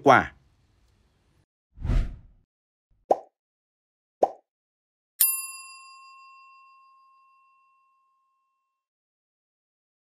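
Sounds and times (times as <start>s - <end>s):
bell ding: 5.2s - 8.7s.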